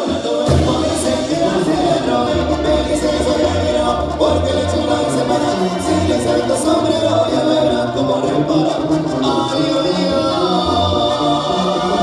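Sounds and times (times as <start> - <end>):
dance music with group vocals: 0.0 - 12.0.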